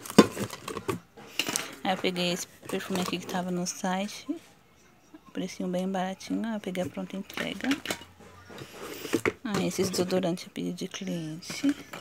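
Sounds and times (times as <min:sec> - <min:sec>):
plastic bottles knocking together: 0:00.0 - 0:03.6, 0:06.8 - 0:10.3, 0:11.4 - 0:12.0.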